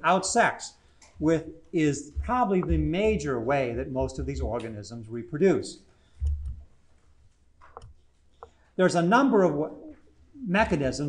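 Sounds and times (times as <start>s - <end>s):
short low thump: 2.2s - 3.2s.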